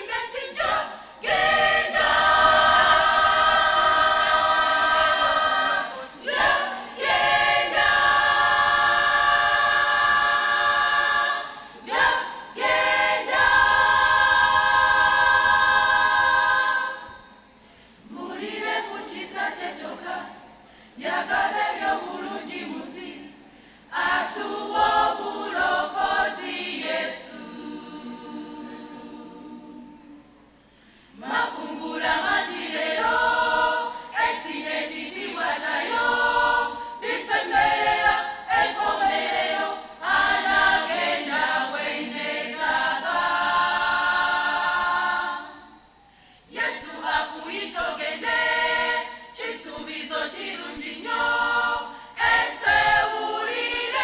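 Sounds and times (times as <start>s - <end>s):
women's choir singing: 0.0s - 54.0s.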